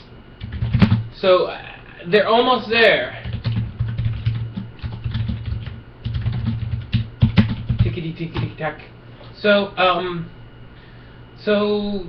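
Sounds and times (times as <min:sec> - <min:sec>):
typing on computer keyboard: 0:00.4 - 0:01.0, 0:03.2 - 0:08.5.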